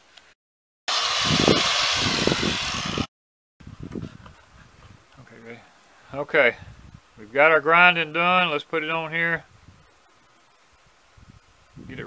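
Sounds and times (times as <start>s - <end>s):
electric grinder grinding metal: 0.9s - 3.1s.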